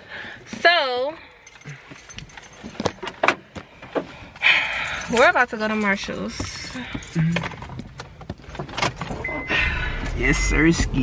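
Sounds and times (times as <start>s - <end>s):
car engine rumbling: 0.5s - 11.0s
high car beep: 9.2s - 11.0s.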